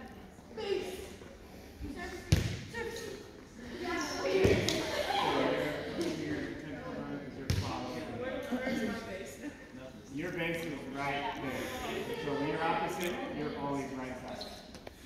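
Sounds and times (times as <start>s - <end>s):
volleyball smacks on gym floor: 2.3s - 2.7s.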